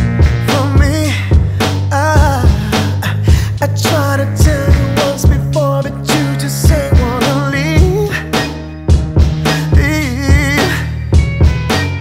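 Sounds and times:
drum beat: 0.0 - 12.0
steady bass: 0.0 - 12.0
male vocal singing: 0.2 - 8.4, 9.4 - 11.0.

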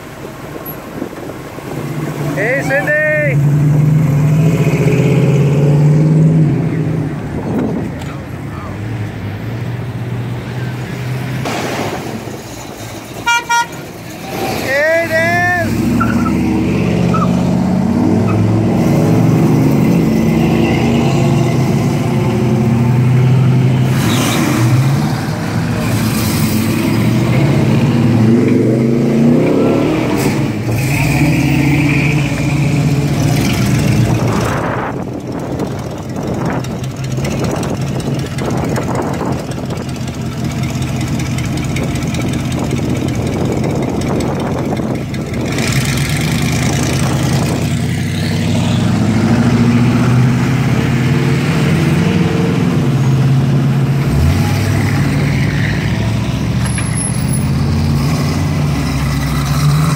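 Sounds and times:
car engines rumbling past: 0.0 - 59.9
car horn toots: 13.2 - 13.9.

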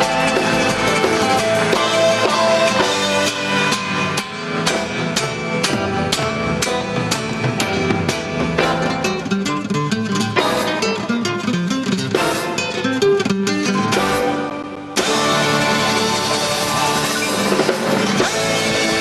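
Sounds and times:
classical guitar strummed chords: 0.0 - 19.0.

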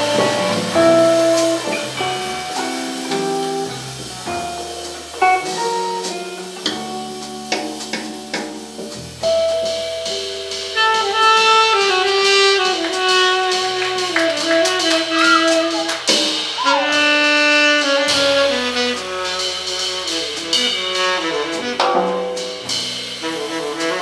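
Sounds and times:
tenor saxophone melody: 0.0 - 7.8, 10.7 - 24.0
electric guitar: 0.0 - 9.2
bass guitar: 0.0 - 24.0
drum kit with cymbal accents: 0.0 - 24.0.

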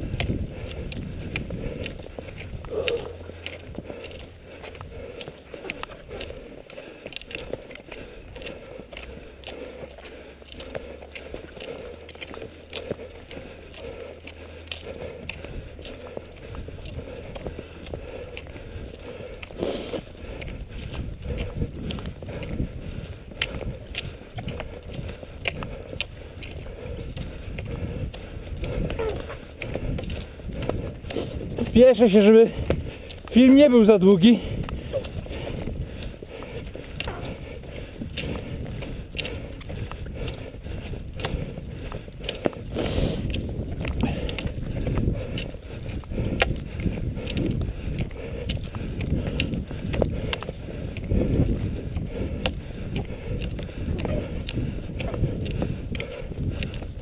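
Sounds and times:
skis sliding over snow: 19.1 - 22.1, 29.0 - 38.7, 41.2 - 44.3.

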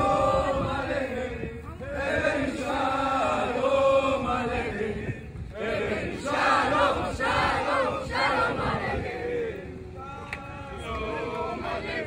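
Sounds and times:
crowd singing in unison: 0.0 - 12.0.

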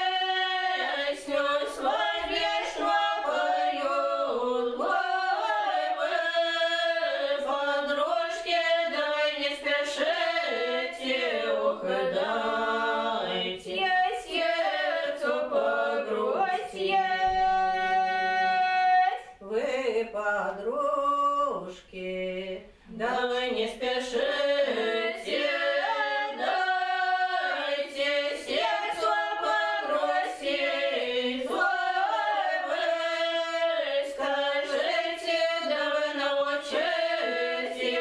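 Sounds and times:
women singing a cappella: 0.0 - 38.0.

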